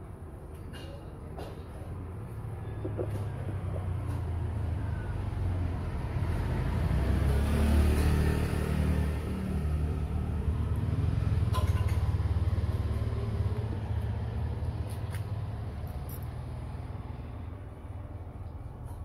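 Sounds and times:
vehicle engine rumbling: 0.0 - 19.0.

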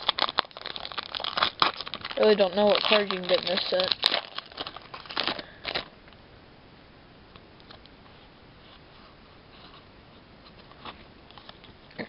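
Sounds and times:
foil wrapper crinkling: 0.0 - 5.9.

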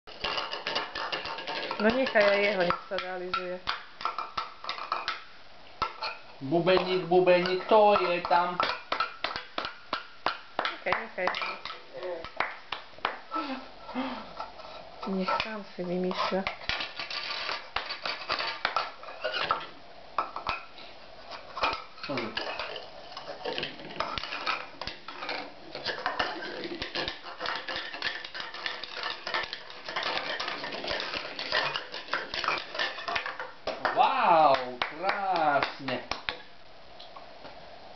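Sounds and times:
child banging spatula and bowls: 0.1 - 12.4, 21.6 - 36.5
person speaking: 6.4 - 8.6, 10.8 - 12.4, 33.8 - 36.2.

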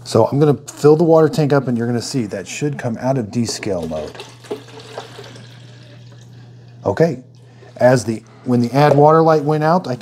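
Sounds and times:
water pouring into plastic tank: 3.6 - 6.5.

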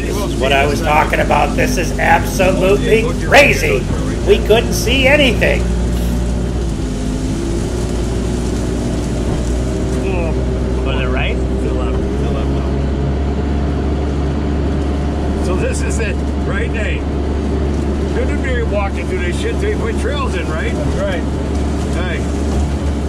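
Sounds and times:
voices: 0.0 - 6.4, 9.8 - 22.6
diesel engine running: 0.0 - 23.0
vehicle pushing through reeds: 0.0 - 23.0.

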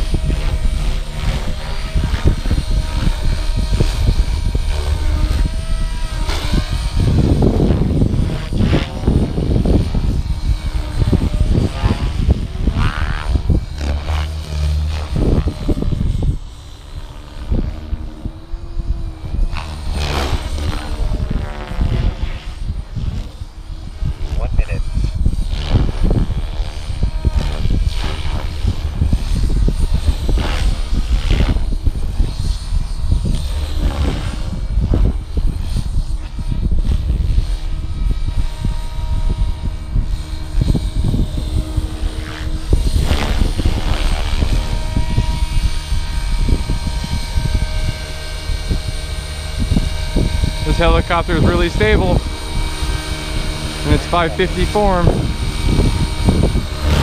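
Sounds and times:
rc helicopter rotor whine: 0.0 - 57.0
wind on microphone: 0.0 - 57.0.

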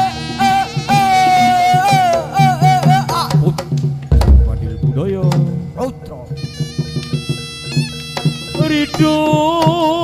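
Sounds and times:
low steady tones: 4.1 - 6.2
drum strokes: 4.1 - 6.3.

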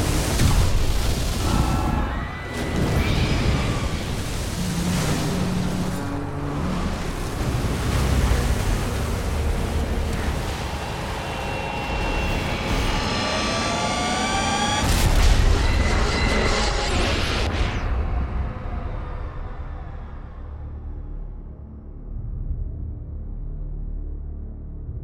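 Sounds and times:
roaring rush of water: 0.0 - 15.5.

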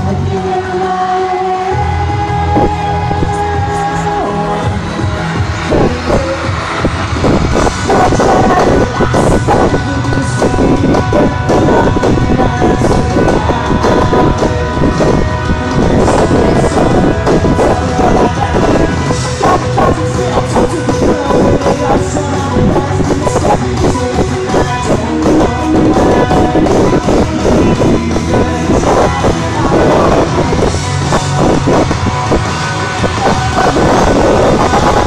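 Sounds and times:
rock band playing loudly: 0.0 - 35.0.

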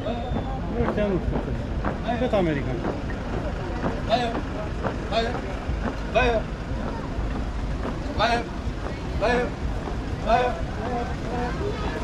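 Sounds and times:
person shouting marching call: 0.0 - 1.3, 3.3 - 12.0.

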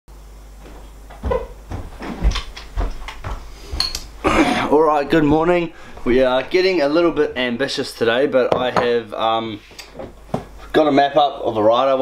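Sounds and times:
footsteps: 0.5 - 7.5, 9.6 - 10.7.

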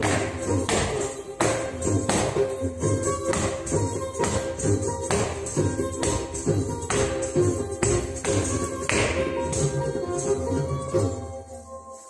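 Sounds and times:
bare feet striking stage floor: 0.0 - 9.7
dance music with percussion: 0.0 - 12.0
jingling bells: 0.0 - 12.0.

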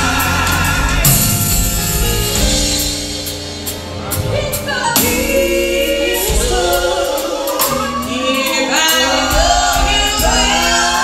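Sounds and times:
band with bass and drums: 0.0 - 11.0
women singing in harmony: 4.2 - 11.0.

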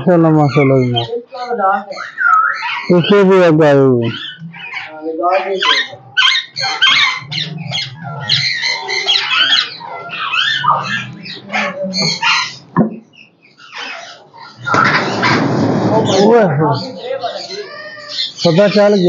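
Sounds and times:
parakeet growls and squawks: 0.0 - 19.0.

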